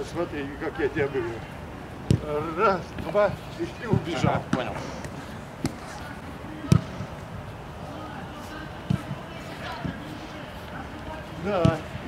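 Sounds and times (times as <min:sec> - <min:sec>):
football kicked on turf: 0:06.6 - 0:07.0, 0:11.6 - 0:11.9.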